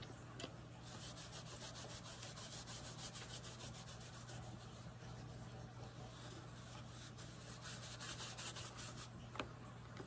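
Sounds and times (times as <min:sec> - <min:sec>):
wipe rubbing on metal plate: 0:00.8 - 0:09.1.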